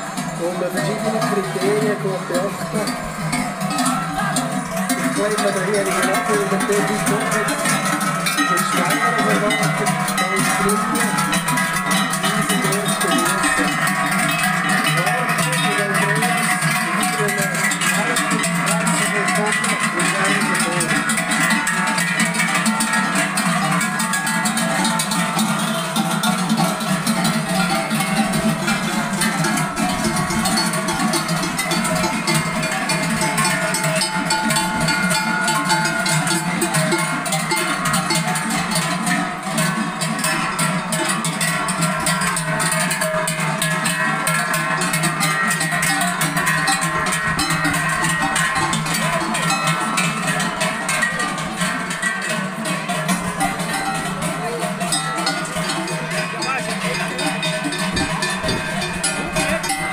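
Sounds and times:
cowbells clanging: 0:00.0 - 0:59.9.

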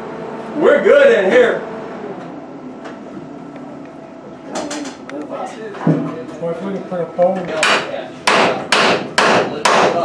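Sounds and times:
hammer striking steel: 0:07.6 - 0:10.0.

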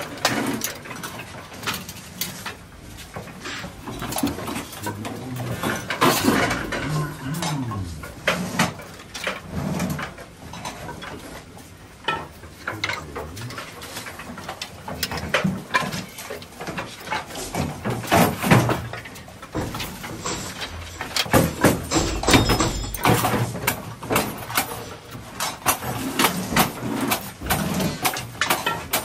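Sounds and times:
wooden boards clattering: 0:00.0 - 0:29.0.

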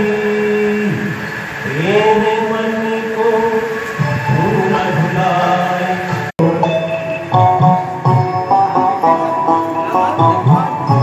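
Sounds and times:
man singing through microphone: 0:00.0 - 0:07.8, 0:09.1 - 0:11.0.

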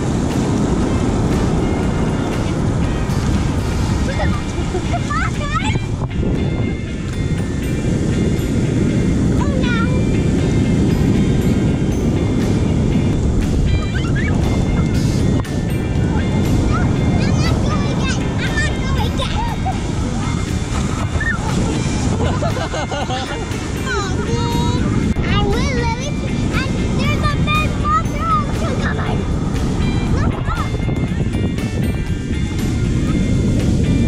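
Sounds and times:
background music: 0:00.0 - 0:34.0
shallow surf washing: 0:00.0 - 0:34.0
wind rumbling on microphone: 0:00.0 - 0:34.0
young child's voice: 0:04.0 - 0:05.9, 0:09.4 - 0:10.1, 0:16.2 - 0:19.6, 0:23.8 - 0:29.3, 0:30.1 - 0:30.8.

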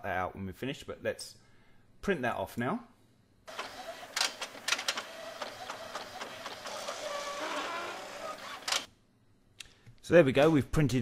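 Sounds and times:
inkjet printer running: 0:03.5 - 0:08.9
printer clicks: 0:03.5 - 0:08.9.

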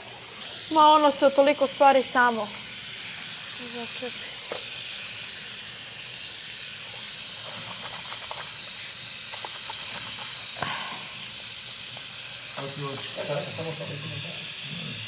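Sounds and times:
tap water running into basin: 0:00.0 - 0:15.0.

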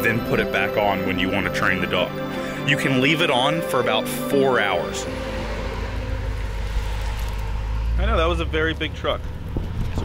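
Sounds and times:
large truck driving past: 0:01.4 - 0:09.9.

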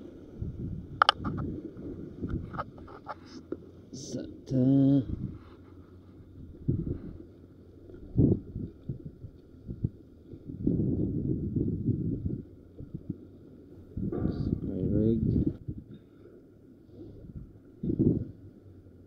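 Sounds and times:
wind rumble: 0:00.0 - 0:16.0, 0:16.9 - 0:19.0.

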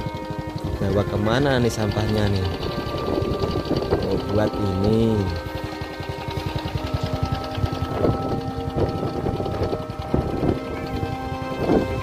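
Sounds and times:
fast low pulsing: 0:00.0 - 0:12.0
music with long held notes: 0:00.0 - 0:12.0.

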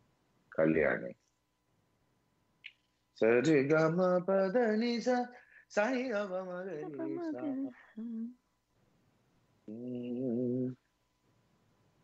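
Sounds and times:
man humming low note: 0:06.8 - 0:08.3, 0:09.7 - 0:10.8.

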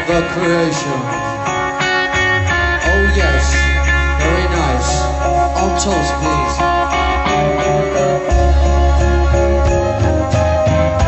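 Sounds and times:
electric guitar: 0:00.0 - 0:11.0
rock band playing live: 0:00.0 - 0:11.0
person singing: 0:02.8 - 0:08.9.

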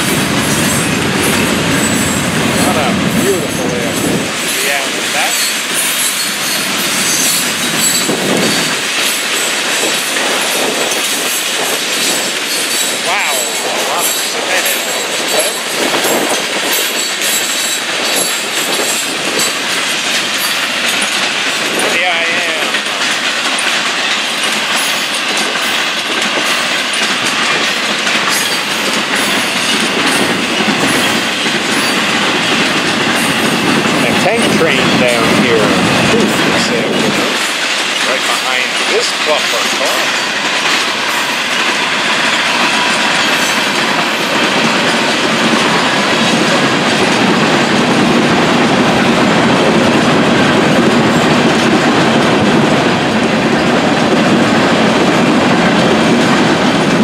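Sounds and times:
wind on microphone: 0:00.0 - 0:05.8, 0:06.8 - 0:17.0, 0:28.6 - 0:37.6, 0:43.6 - 0:57.0
freight train wheels clattering: 0:00.0 - 0:57.0
wheel squeals: 0:05.2 - 0:09.5.

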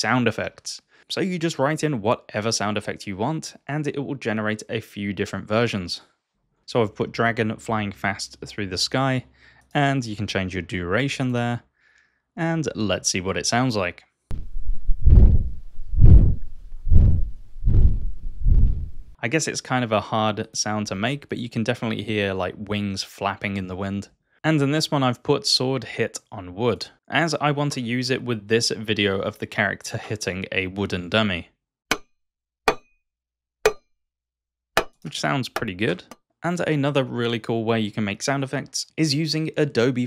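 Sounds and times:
whooshing wing flaps: 0:14.3 - 0:19.2.

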